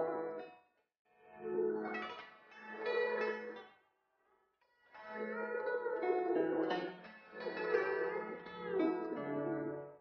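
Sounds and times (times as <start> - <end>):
plucked string instrument music: 5.2 - 9.9.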